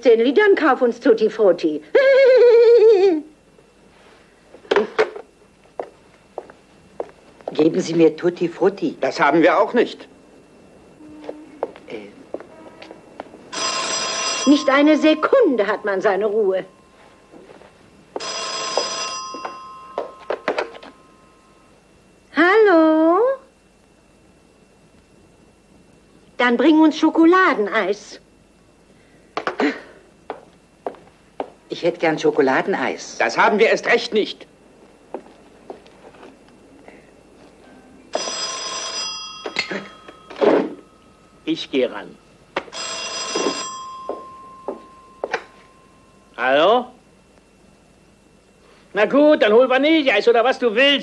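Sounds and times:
telephone bell ringing: 13.5s - 21.8s, 37.7s - 42.1s, 42.7s - 46.5s.

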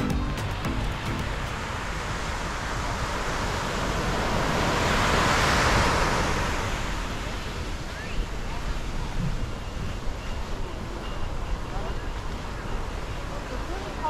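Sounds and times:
background music: 0.0s - 1.8s
ocean surf breaking on beach: 0.0s - 14.0s.

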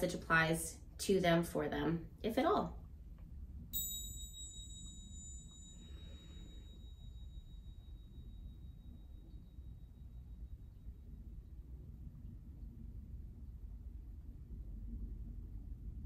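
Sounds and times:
hand bells ringing: 3.8s - 9.2s.

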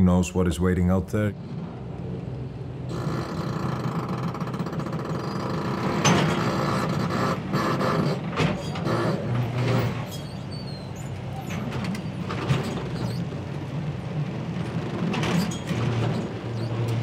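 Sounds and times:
engine humming: 0.0s - 17.0s
clattering and clanking knocks: 2.9s - 10.2s, 14.4s - 17.0s.

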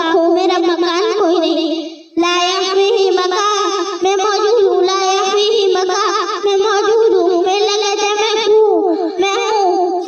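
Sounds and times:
boy chanting: 0.0s - 10.0s.

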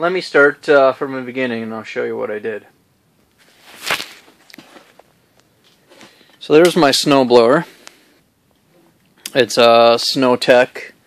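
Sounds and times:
camera handling rustle: 3.3s - 6.2s
faint footsteps: 3.3s - 6.4s.

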